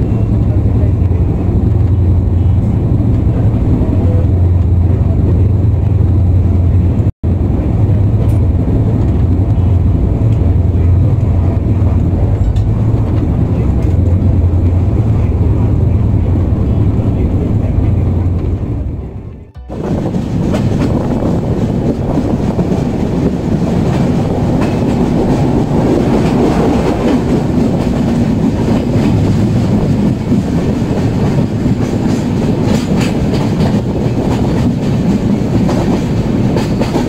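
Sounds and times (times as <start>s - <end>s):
train coach rumbling at speed: 0.0s - 37.0s.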